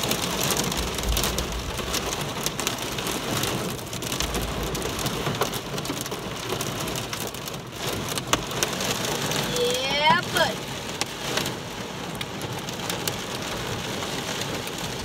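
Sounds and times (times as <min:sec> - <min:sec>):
low rumbles: 0:00.0 - 0:05.0
heavy rain on a car: 0:00.0 - 0:15.0.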